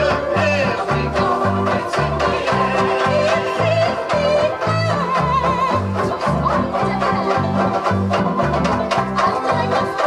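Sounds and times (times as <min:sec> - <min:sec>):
voices singing along: 0:00.0 - 0:07.8
banjo ukuleles strummed: 0:00.0 - 0:10.0
woman singing: 0:00.0 - 0:10.0.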